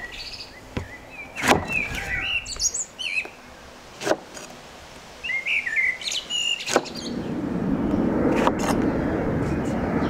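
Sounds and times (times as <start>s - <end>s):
small bird chirping: 0.0s - 3.4s, 5.2s - 7.4s
steady low rumbling: 6.9s - 10.0s.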